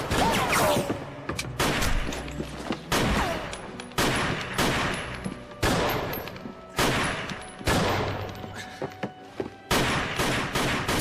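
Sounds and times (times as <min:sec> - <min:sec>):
gunshots echoing in stairwell: 0:00.0 - 0:00.9, 0:01.6 - 0:02.2, 0:02.9 - 0:08.3, 0:09.7 - 0:11.0.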